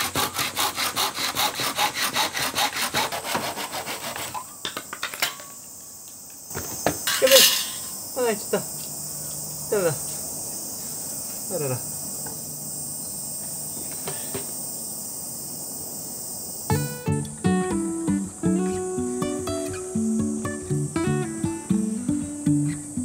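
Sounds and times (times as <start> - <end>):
cicadas chorus: 0.0 - 23.0
man exclaiming: 11.5 - 11.8
acoustic guitar music: 16.7 - 23.0.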